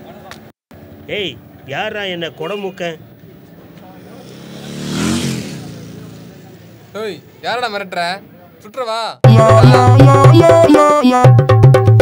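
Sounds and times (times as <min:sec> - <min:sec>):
motor vehicle passing by: 0:03.5 - 0:07.1.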